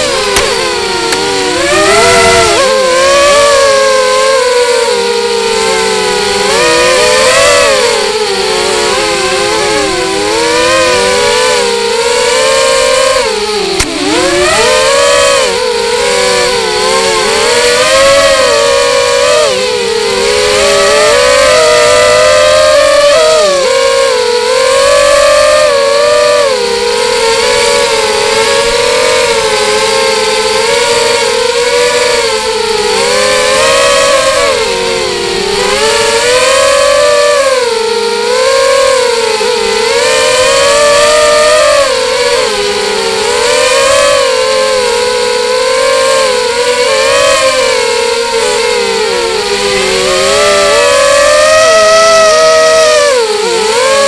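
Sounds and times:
drone motors and propellers whining: 0:00.0 - 0:54.0.

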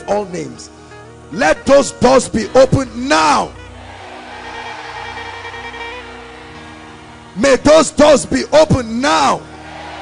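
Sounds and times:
soft sustained chords music: 0:00.0 - 0:10.0.

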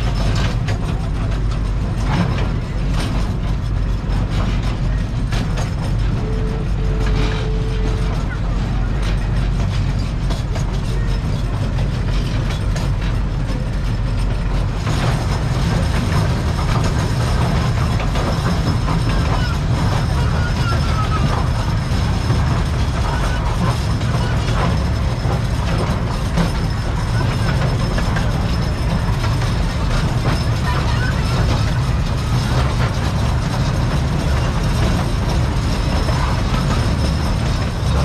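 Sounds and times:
small train rumbling on track: 0:00.0 - 0:38.0
wheels clicking and rattling: 0:00.0 - 0:38.0.

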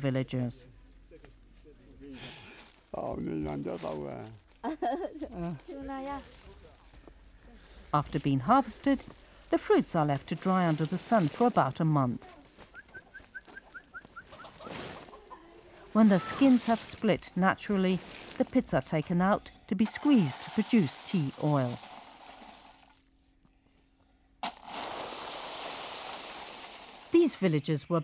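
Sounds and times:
dried fruits rattling under a rake: 0:19.8 - 0:23.0, 0:24.5 - 0:27.2
wooden rake dragged on plastic: 0:19.8 - 0:23.0.

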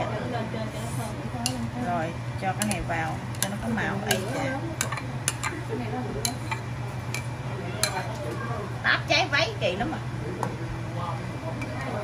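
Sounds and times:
steady low hum: 0:00.0 - 0:12.0
ladle tapping and scraping a pot: 0:02.4 - 0:05.6, 0:06.2 - 0:08.2.

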